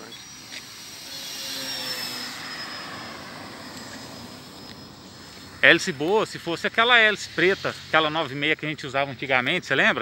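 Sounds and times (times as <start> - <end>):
model airplane motor whine: 0.0 - 8.5.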